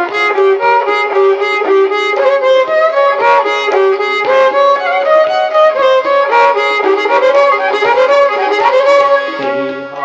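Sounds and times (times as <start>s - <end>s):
violin sliding melody: 0.0s - 10.0s.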